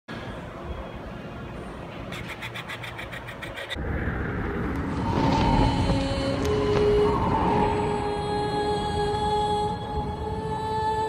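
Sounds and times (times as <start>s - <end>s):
rising rumble: 3.7s - 10.5s
sustained music tones: 3.7s - 11.0s.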